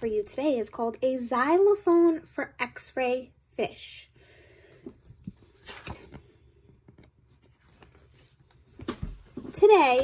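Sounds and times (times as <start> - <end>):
rustling of book pages: 4.7 - 10.0
book cover flipping: 4.8 - 9.5.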